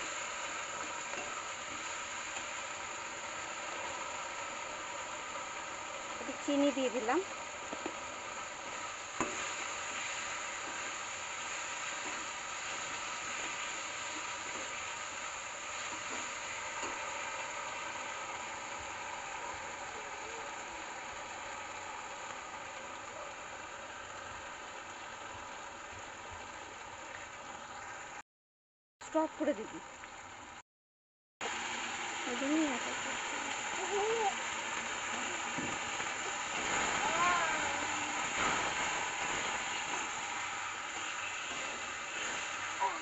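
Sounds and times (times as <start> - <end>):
food sizzling in a pan: 0.0 - 28.2, 29.1 - 30.5, 31.4 - 43.0.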